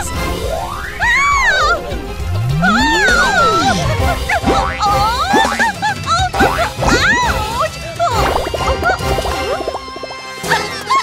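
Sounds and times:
background music: 0.0s - 11.0s
cartoon sliding pitch glides: 0.5s - 5.8s
wavering high cry: 1.0s - 4.2s.

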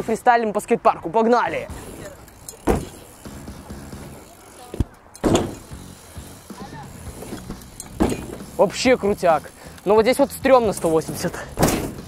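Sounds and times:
bike rolling over asphalt: 1.4s - 12.0s.

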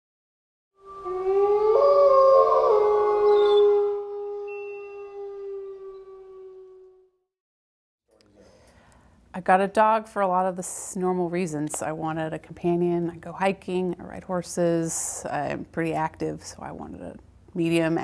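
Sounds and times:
wolves howling: 0.8s - 7.1s.

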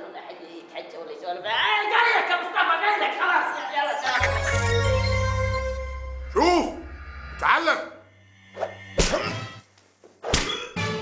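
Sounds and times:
music: 4.0s - 7.5s, 10.4s - 11.0s.

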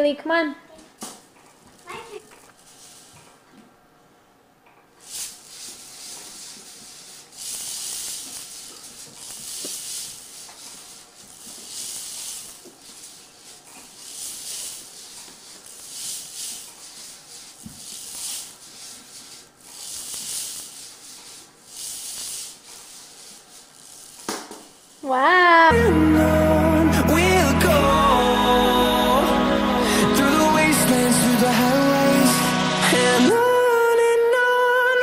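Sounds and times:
hula hoop swishing: 5.0s - 24.8s.

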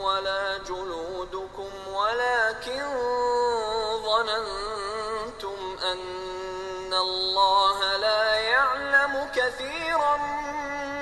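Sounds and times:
person chanting verses melodically: 0.0s - 11.0s.

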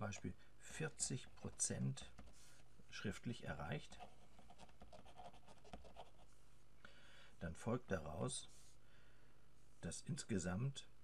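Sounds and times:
pen scratching on paper: 4.0s - 6.3s.

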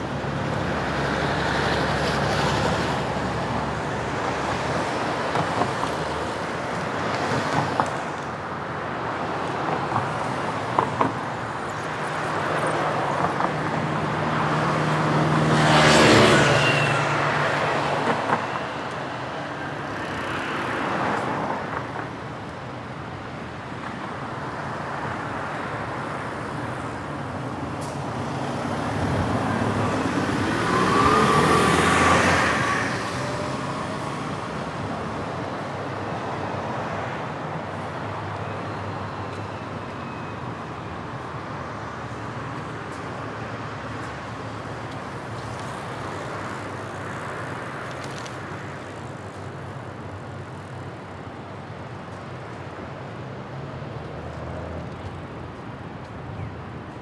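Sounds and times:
traffic noise: 0.0s - 57.0s
vehicle passing loudly: 29.2s - 34.1s
engine passing with rising pitch: 29.4s - 34.1s.

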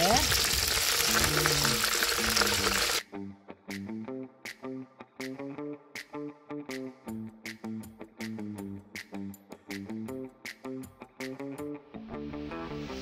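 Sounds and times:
food sizzling in hot oil: 0.0s - 3.0s
plucked guitar music with light beat: 3.0s - 13.0s.

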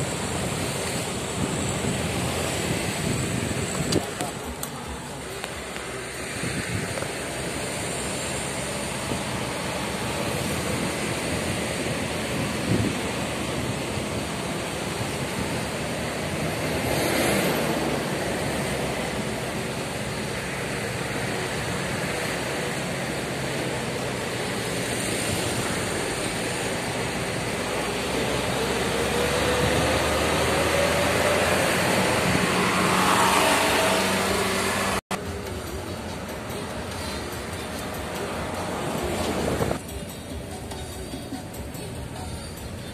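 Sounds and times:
car road noise from inside: 0.0s - 42.9s.

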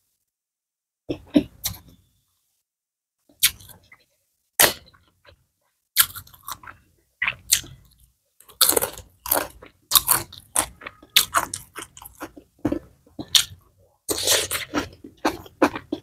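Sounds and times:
chewing crunchy food: 6.0s - 16.0s.

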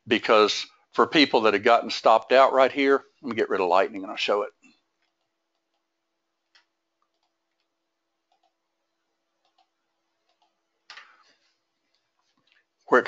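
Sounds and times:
computer mouse clicks: 5.0s - 8.6s, 9.4s - 11.2s.

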